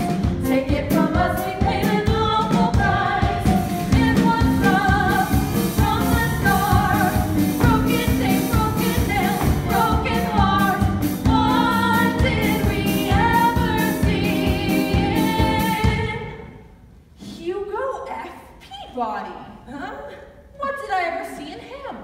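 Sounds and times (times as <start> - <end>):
instrumental accompaniment with beat: 0.0 - 16.1
young women singing a duet: 0.0 - 16.6.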